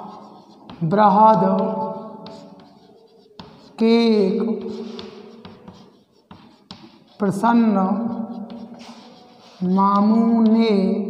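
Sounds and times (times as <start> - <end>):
chalk scratching on blackboard: 0.0 - 10.8
person speaking: 0.0 - 11.0.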